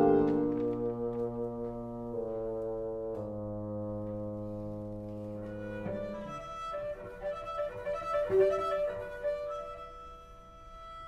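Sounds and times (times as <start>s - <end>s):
brass chords: 0.0s - 7.2s
cello bowed melody: 0.0s - 11.0s.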